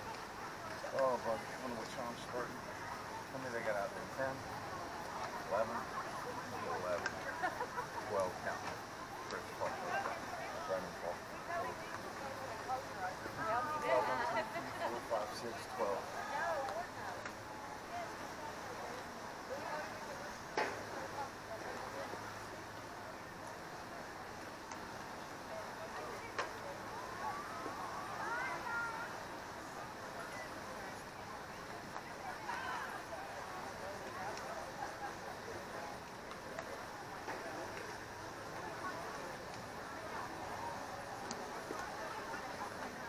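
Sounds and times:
distant indistinct voices: 0:00.0 - 0:43.0
faint clicks: 0:41.2 - 0:43.0.

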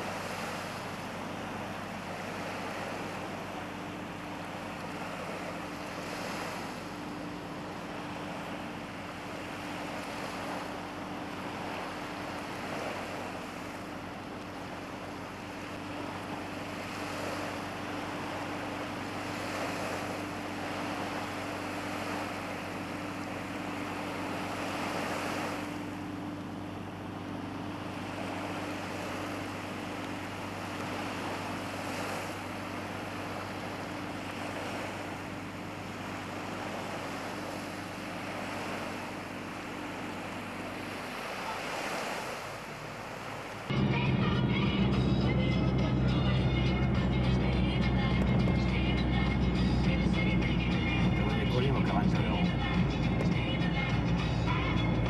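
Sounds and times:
small waves breaking on shore: 0:00.0 - 0:43.8
low hum: 0:00.1 - 0:41.4, 0:43.7 - 0:55.0.

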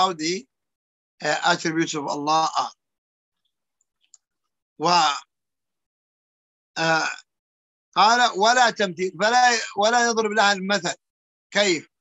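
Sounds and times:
faint clicks: 0:03.4 - 0:04.6
man's voice: 0:08.0 - 0:11.0.

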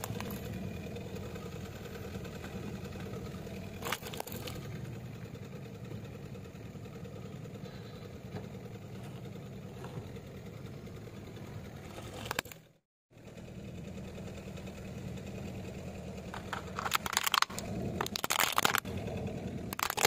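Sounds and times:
car engine idling: 0:00.0 - 0:20.0
plastic toy cracking: 0:16.4 - 0:18.9, 0:19.7 - 0:20.0.

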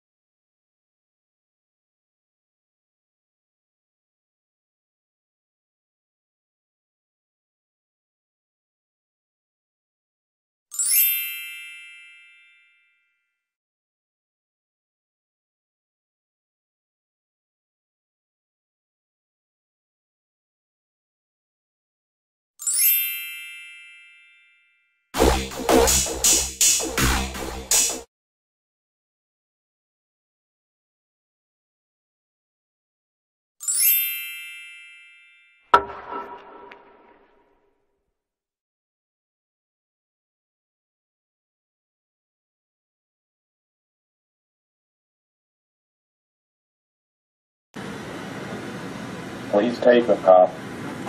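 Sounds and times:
bright chime: 0:10.8 - 0:13.0, 0:22.6 - 0:24.8, 0:33.6 - 0:35.6.

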